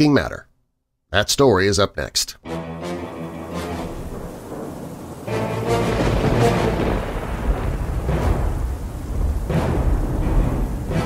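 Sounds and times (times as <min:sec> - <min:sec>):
background music: 0:02.4 - 0:11.0
deep rumble: 0:04.0 - 0:11.0.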